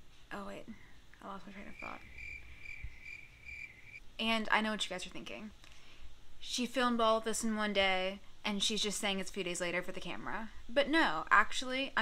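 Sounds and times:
high-pitched insect trill: 1.7s - 4.0s.

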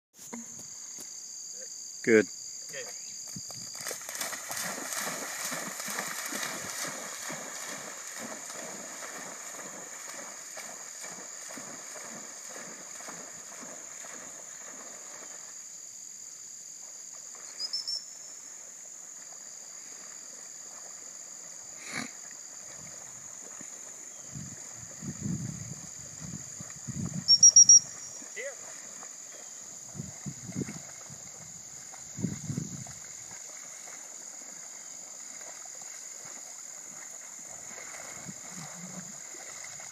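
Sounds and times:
insects calling: 0.2s - 39.9s
whistle pips: 17.6s - 18.2s, 27.3s - 28.2s.

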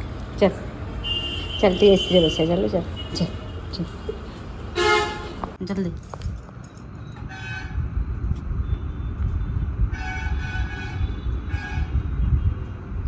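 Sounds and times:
road traffic rumble: 0.0s - 13.0s
vehicle horn honking: 4.8s - 5.4s.

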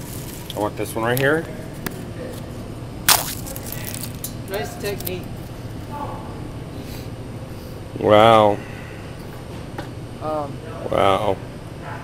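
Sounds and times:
fortune cookie crunching: 3.1s - 4.4s.

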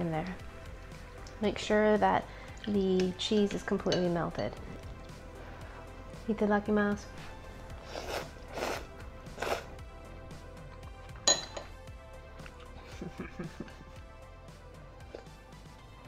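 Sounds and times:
soft background music: 0.0s - 16.0s
utensil clinking on ceramic bowl: 2.6s - 4.5s, 11.2s - 11.8s
noodles slurped: 7.7s - 9.8s.

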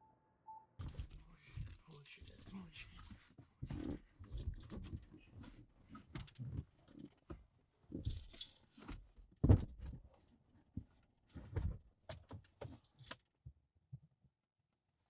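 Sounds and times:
muffled wordless voice: 1.2s - 3.2s.

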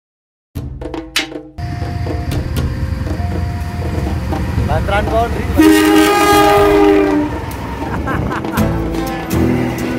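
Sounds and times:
train coaches rushing and clattering: 1.6s - 9.9s
locomotive horn two-note chord: 5.4s - 7.5s.

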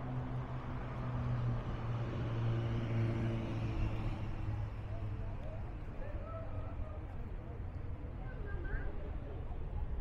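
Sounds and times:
city traffic noise: 0.0s - 10.0s.

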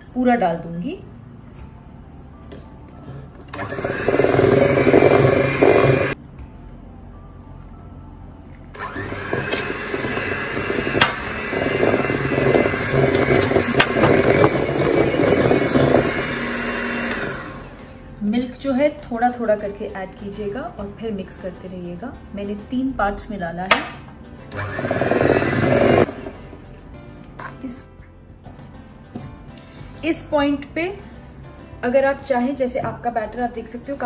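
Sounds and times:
electric hand mixer beating batter: 3.5s - 6.2s, 8.8s - 17.8s, 24.5s - 26.4s.

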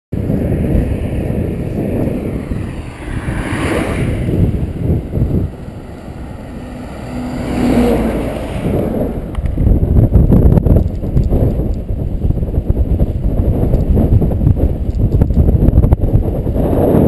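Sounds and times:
wind buffeting microphone: 0.1s - 17.0s
truck engine hum: 0.2s - 14.7s.

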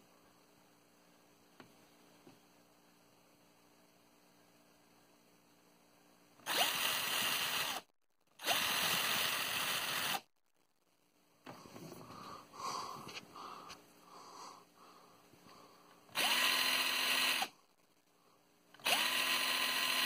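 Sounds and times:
cordless drill whining: 6.4s - 10.2s, 16.1s - 17.5s, 18.8s - 20.0s
quiet uneven sounds: 10.8s - 16.1s.

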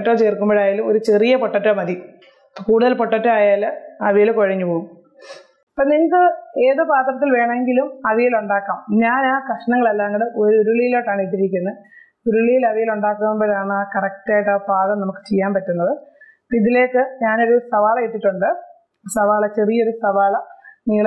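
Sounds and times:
woman speaking: 0.0s - 5.0s, 5.8s - 21.0s.

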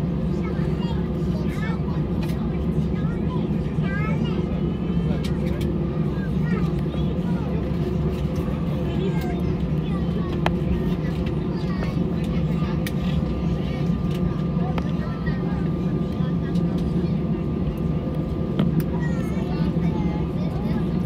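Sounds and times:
jet engines humming at idle: 0.0s - 21.0s
passengers murmuring: 0.0s - 21.0s.

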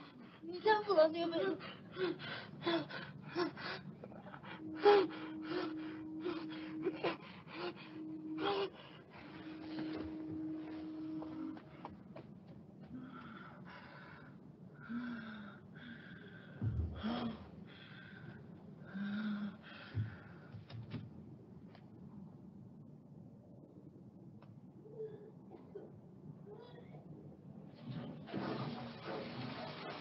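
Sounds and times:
woman whimpering moans: 1.7s - 11.5s.

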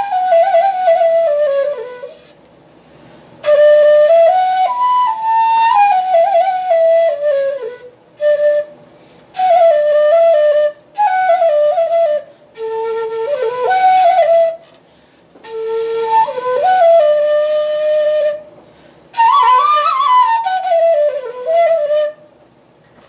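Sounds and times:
flute playing solo melody: 0.0s - 2.4s, 3.4s - 14.6s, 15.4s - 18.5s, 19.1s - 22.3s.

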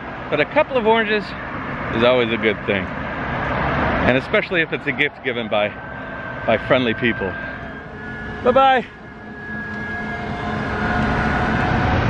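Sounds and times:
road noise: 0.0s - 12.0s
motorised tricycle whining: 2.0s - 12.0s.

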